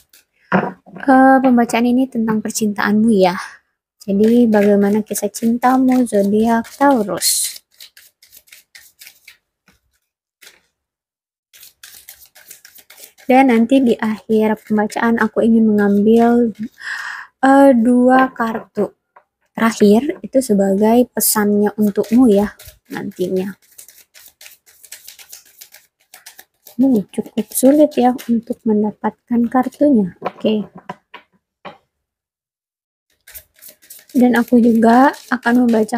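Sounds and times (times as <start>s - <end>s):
cards being shuffled: 4.2s - 10.7s, 11.6s - 13.3s, 21.8s - 28.6s, 33.2s - 35.9s.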